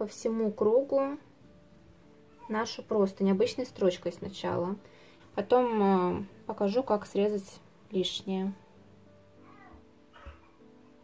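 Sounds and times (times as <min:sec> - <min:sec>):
quiet background music: 0:00.0 - 0:11.0
cat meows: 0:09.4 - 0:10.5.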